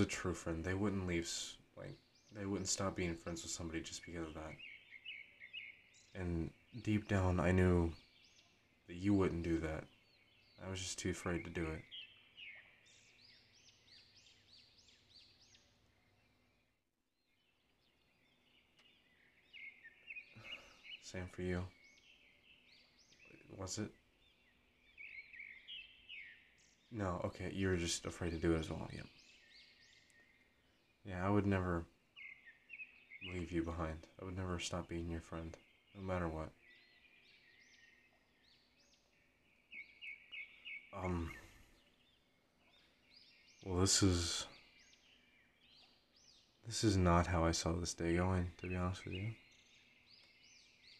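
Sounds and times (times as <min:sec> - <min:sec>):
bird chirping: 0:00.0 - 0:50.9.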